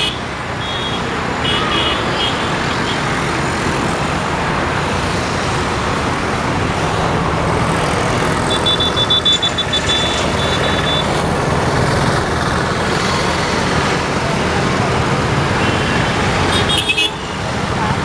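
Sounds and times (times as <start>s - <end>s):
road traffic noise: 0.0s - 18.0s.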